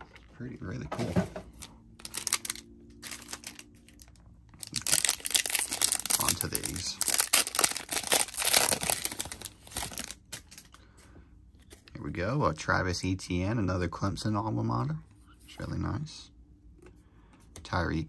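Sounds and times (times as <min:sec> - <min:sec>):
foil wrapper crinkling and tearing: 0:02.0 - 0:10.8.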